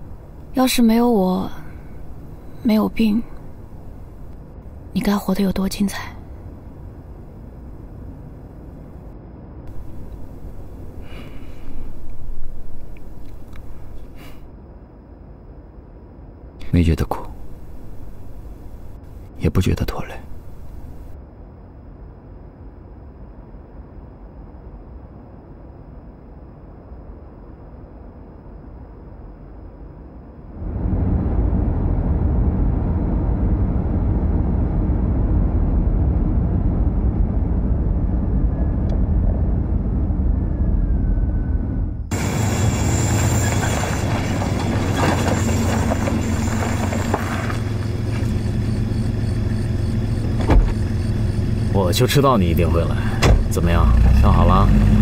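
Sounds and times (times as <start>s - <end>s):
car engine and road noise: 0.0s - 14.4s, 16.6s - 21.3s, 30.6s - 55.0s
faint low rumble: 0.0s - 55.0s
car driving on unpaved road: 9.7s - 14.2s, 16.7s - 21.2s, 30.6s - 55.0s.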